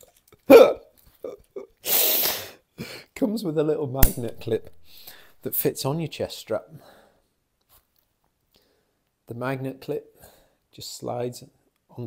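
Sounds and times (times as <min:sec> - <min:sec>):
breathy hiss: 0:01.8 - 0:02.6.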